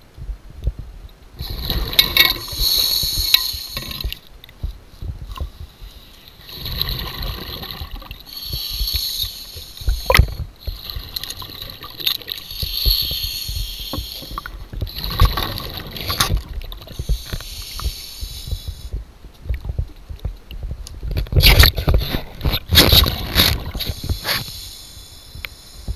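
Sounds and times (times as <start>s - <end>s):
low underwater rumble: 0.0s - 24.2s
underwater breathing bubbles: 1.4s - 4.3s, 5.1s - 19.0s.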